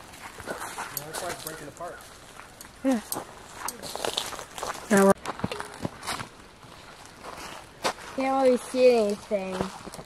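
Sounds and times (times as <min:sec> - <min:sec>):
footsteps on pine needles: 0:03.2 - 0:10.0.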